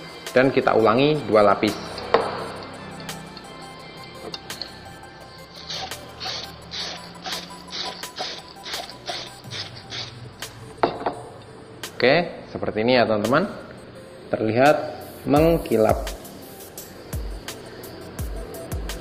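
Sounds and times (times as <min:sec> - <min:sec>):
background music: 0:00.0 - 0:19.0
aerosol can spraying: 0:05.5 - 0:10.2, 0:15.0 - 0:17.6.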